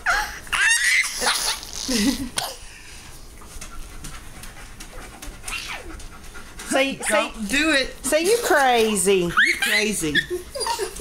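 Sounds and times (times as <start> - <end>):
small dog panting: 3.5 - 7.5.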